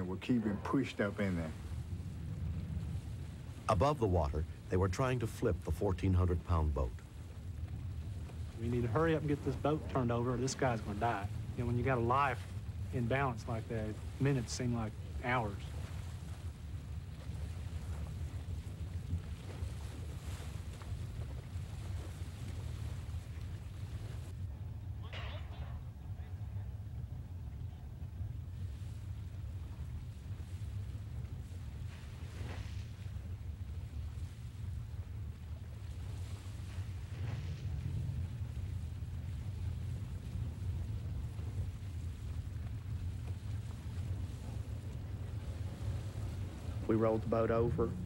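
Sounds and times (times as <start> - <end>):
wind over open water: 0.0 - 48.0
boat motors idling: 42.2 - 48.0.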